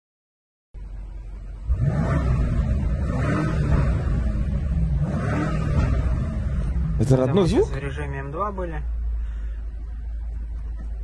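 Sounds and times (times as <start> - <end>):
car engine revving as car drives off: 1.6 - 7.9.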